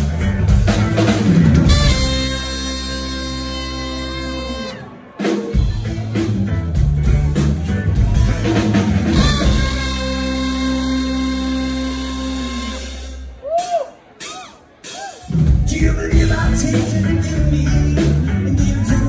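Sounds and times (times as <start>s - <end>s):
live band with trumpet: 0.0s - 19.0s.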